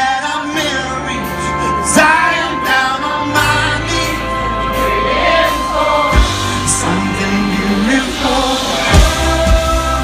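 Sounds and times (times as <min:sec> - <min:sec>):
man singing: 0:00.0 - 0:04.5, 0:06.0 - 0:10.0
electric guitar: 0:00.0 - 0:10.0
keyboard: 0:00.0 - 0:10.0
sustained bass: 0:00.0 - 0:10.0.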